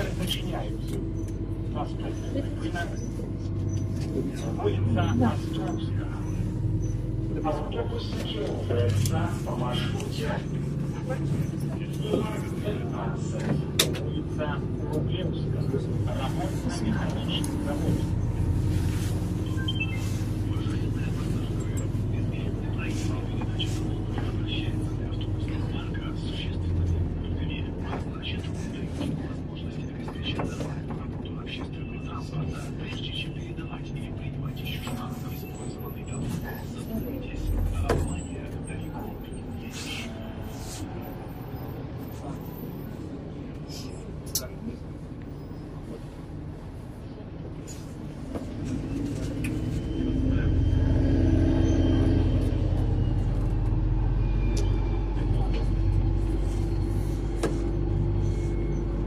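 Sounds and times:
bus engine drone: 0.0s - 59.0s
indistinct passenger voices: 0.0s - 59.0s
road rumble: 0.0s - 59.0s.

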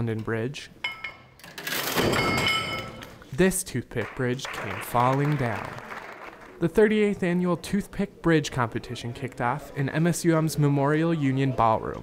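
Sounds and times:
metal weight plates crashing: 1.8s - 3.0s.

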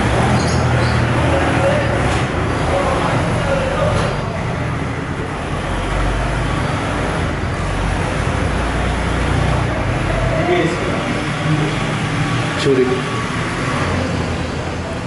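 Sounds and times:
road traffic rumble: 0.0s - 15.0s
faint voices: 0.9s - 5.6s.

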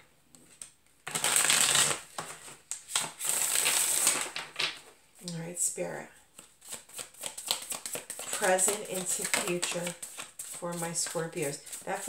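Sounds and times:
cards being shuffled: 0.5s - 4.9s, 6.3s - 12.0s.

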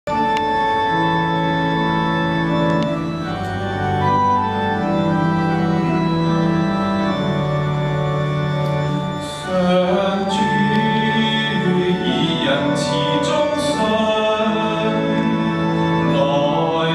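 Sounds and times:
church organ playing chords: 0.1s - 16.9s.

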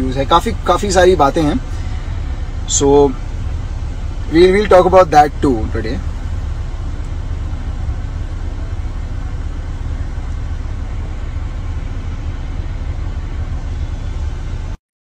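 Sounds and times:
car engine rumble: 0.0s - 14.8s
road noise: 0.0s - 14.8s.

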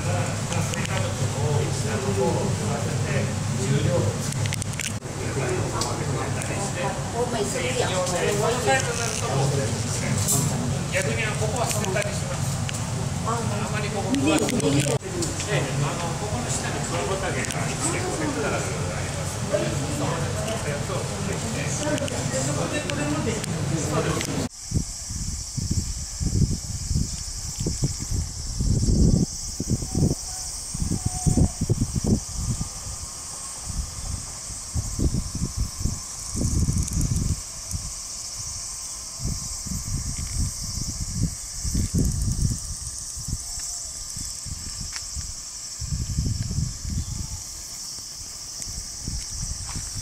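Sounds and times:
wind buffeting microphone: 0.0s - 50.0s
high-pitched insect hiss: 5.8s - 50.0s.

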